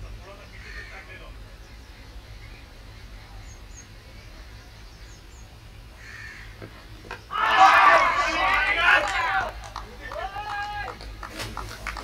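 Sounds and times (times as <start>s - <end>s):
high-pitched celebratory cry: 7.3s - 9.5s
hand claps: 8.5s - 12.0s.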